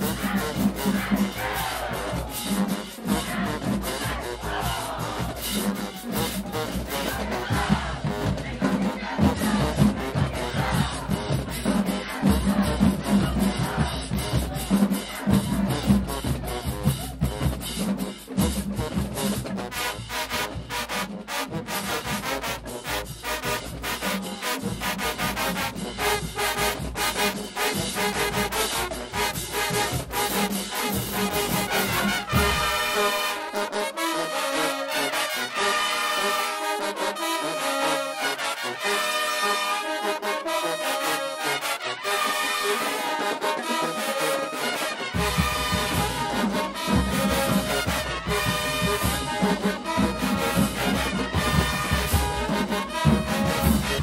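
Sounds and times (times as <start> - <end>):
trumpets playing: 0.0 - 17.1, 18.7 - 54.0
marching band playing: 0.0 - 54.0.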